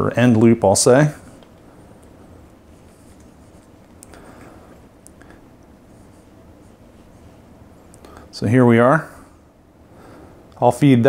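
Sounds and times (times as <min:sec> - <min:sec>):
low room hum: 0:00.0 - 0:11.0
fingers handling fishing line: 0:01.3 - 0:08.3
light ticks and rustles: 0:01.3 - 0:08.3.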